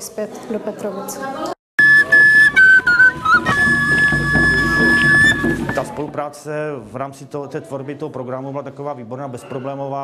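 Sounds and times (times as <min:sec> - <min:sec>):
wooden pipe shrill notes: 0:01.8 - 0:06.1.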